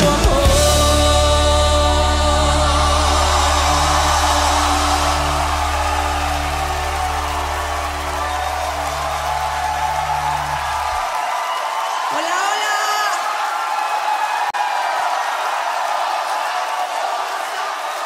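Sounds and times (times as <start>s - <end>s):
crowd cheering: 0.0s - 18.0s
person shouting: 12.1s - 13.2s.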